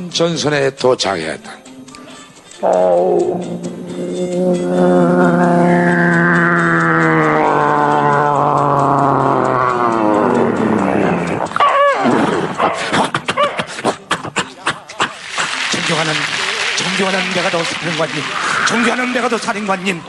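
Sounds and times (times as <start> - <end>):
man making droning vocal sound: 2.6 - 11.5.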